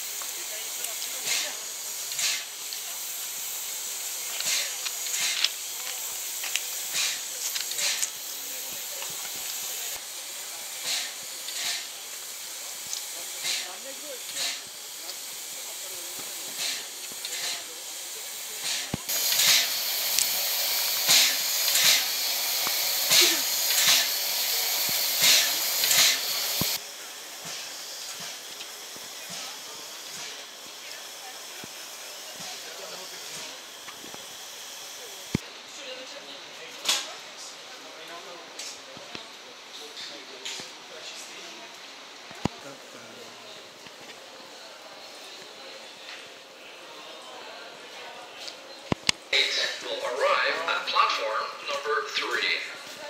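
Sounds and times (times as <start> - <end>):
steam puffs: 0.0 - 35.5, 48.9 - 53.0
steam hissing: 0.0 - 36.0, 49.0 - 53.0.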